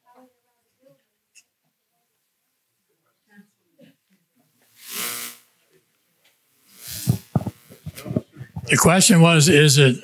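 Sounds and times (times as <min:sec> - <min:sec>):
microphone handling knocks: 0:06.9 - 0:08.7.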